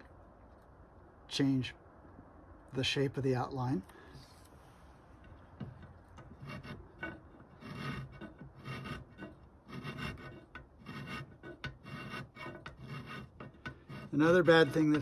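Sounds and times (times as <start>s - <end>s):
file scraping metal: 5.2s - 15.0s.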